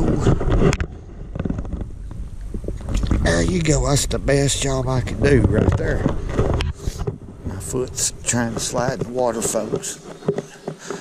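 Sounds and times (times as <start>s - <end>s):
wind rumbling on microphone: 0.0s - 10.3s.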